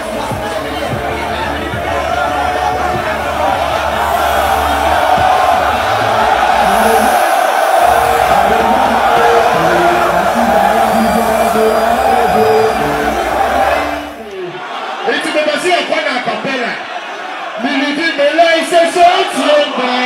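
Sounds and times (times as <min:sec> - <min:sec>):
crowd cheering and singing along: 0:00.0 - 0:15.8
loud live concert music: 0:01.7 - 0:14.3.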